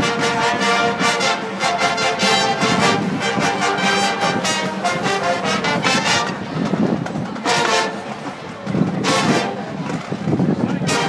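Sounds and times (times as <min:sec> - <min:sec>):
brass chords: 0:00.0 - 0:06.6, 0:07.4 - 0:08.3, 0:09.0 - 0:09.8, 0:10.8 - 0:11.0
marching band playing: 0:00.0 - 0:11.0.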